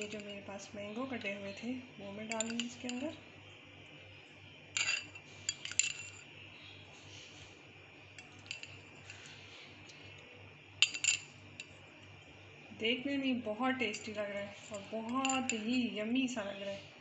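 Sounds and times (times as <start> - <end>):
metal fork clinking on glass: 2.2 - 3.2, 4.8 - 6.3, 8.2 - 9.3, 10.8 - 11.8, 14.8 - 16.0.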